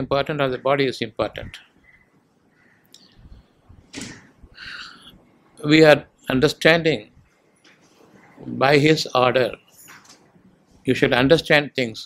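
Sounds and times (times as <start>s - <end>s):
man breathing close to microphone: 4.4s - 5.2s.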